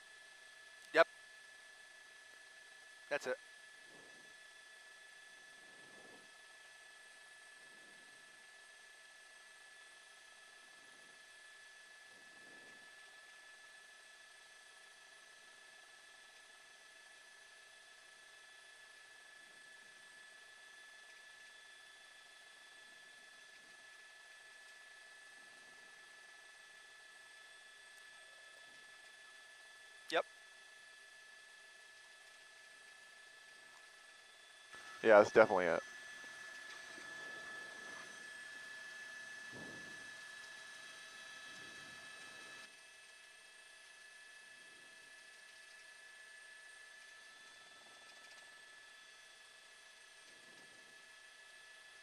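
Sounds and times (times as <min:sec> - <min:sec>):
thin whining tones: 0:23.2 - 0:52.0.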